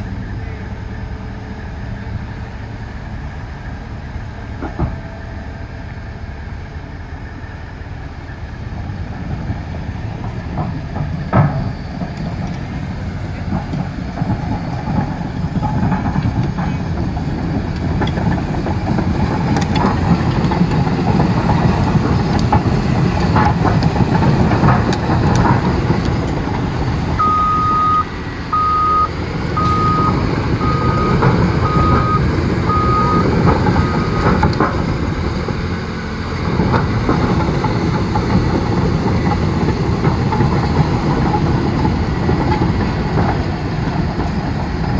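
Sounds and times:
bulldozer diesel engine running: 0:00.0 - 0:44.9
steel tracks clanking: 0:00.0 - 0:44.9
backup alarm beeping: 0:27.2 - 0:34.3.

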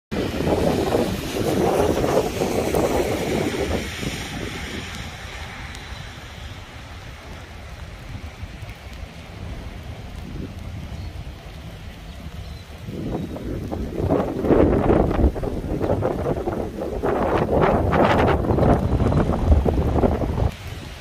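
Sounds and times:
wind buffeting microphone: 0:00.1 - 0:21.0.

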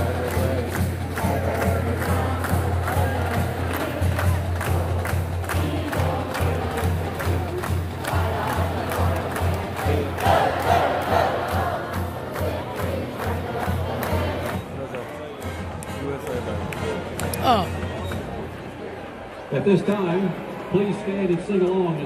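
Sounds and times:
marching band drum beat: 0:00.0 - 0:14.6
stadium crowd noise: 0:00.0 - 0:22.0.

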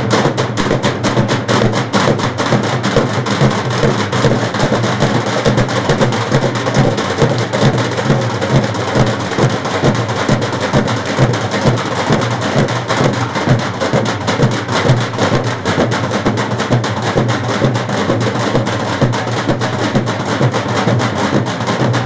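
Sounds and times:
dhol drums beaten with sticks: 0:00.0 - 0:22.0.

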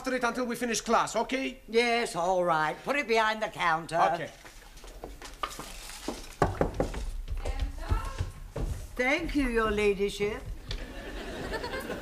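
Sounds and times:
low thuds of people moving: 0:06.5 - 0:09.7.

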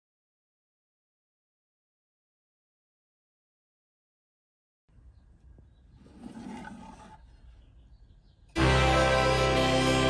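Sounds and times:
wooden drawer sliding: 0:06.0 - 0:07.2.

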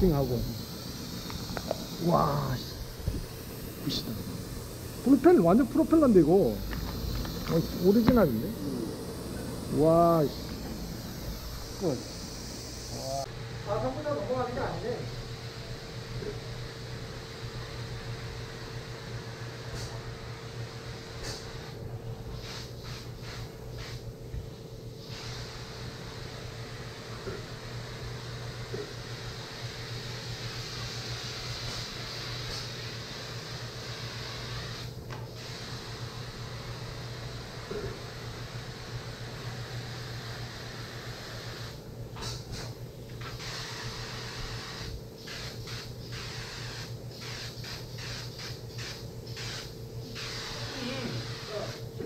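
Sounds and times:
low machine hum: 0:00.0 - 0:21.0
compressed air hissing: 0:00.0 - 0:52.0.

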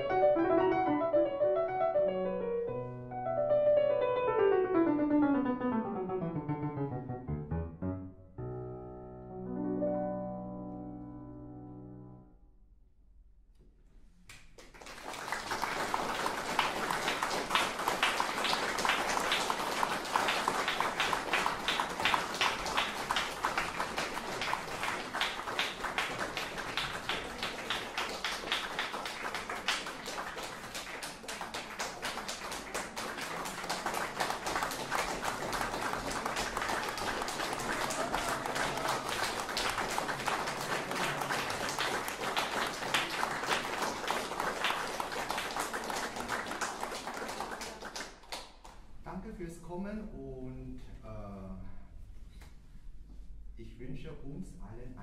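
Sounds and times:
audience applauding: 0:14.5 - 0:48.8.

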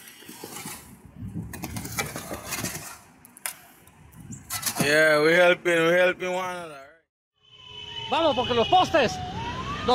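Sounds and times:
metal shovel scraping ash: 0:00.0 - 0:01.0, 0:01.7 - 0:03.1, 0:04.4 - 0:05.1.

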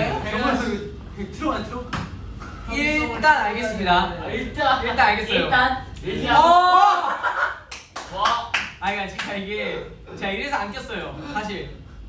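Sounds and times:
young men shouting excitedly: 0:06.2 - 0:07.5
hand claps: 0:07.7 - 0:09.4.

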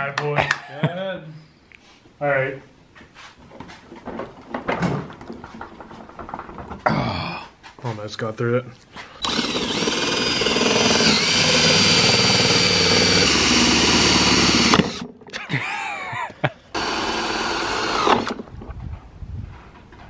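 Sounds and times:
cordless drill boring through plastic: 0:09.2 - 0:15.2, 0:16.8 - 0:18.5.

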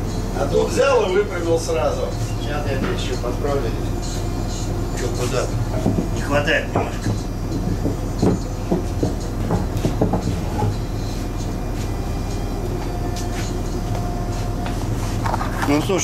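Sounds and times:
steady low hum: 0:00.0 - 0:16.0.

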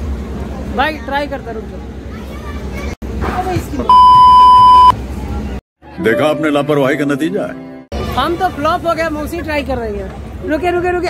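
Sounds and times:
censor bleep tone: 0:03.9 - 0:04.9.

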